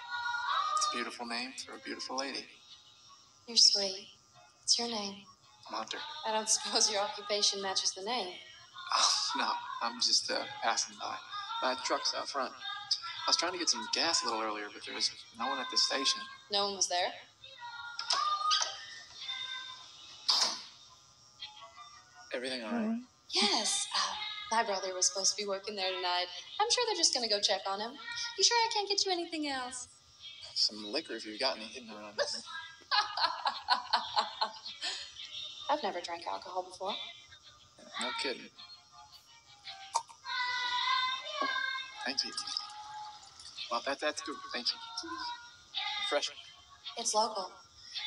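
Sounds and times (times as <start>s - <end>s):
high wordless singing voice: 0.0s - 2.5s, 4.7s - 19.6s, 22.4s - 31.1s, 37.8s - 38.5s, 39.7s - 46.4s.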